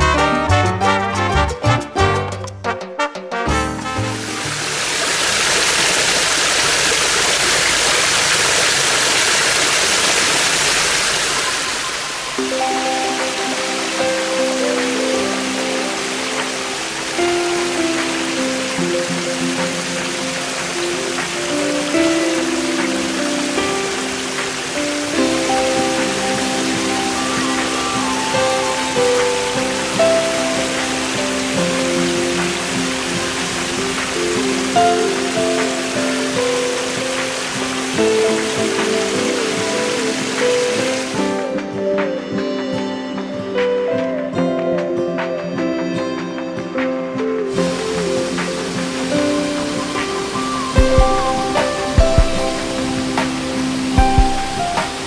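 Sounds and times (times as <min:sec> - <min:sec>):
background music with melody: 0:00.0 - 0:05.4, 0:11.6 - 0:55.0
waterfall splashing into pool: 0:03.8 - 0:41.5, 0:47.5 - 0:55.0.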